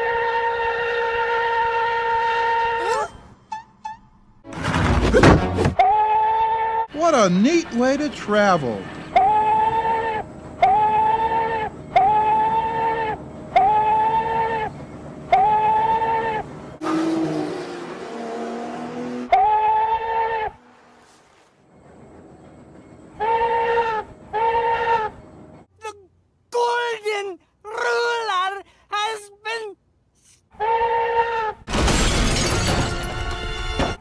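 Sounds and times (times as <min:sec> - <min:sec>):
steam whistle blasts: 0:00.0 - 0:02.9.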